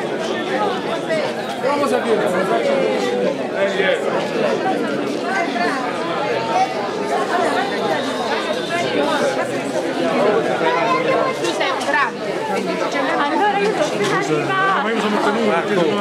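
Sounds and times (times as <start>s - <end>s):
crowd chatter: 0.0s - 16.0s.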